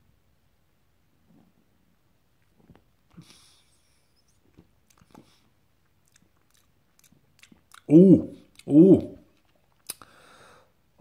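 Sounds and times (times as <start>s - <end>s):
man saying ooh: 7.9s - 9.2s
faint breathy exhale: 10.0s - 10.8s.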